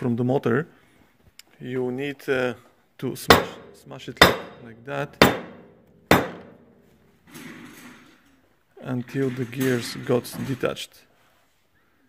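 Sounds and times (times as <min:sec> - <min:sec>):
hammer strike on metal: 0:03.3 - 0:06.7.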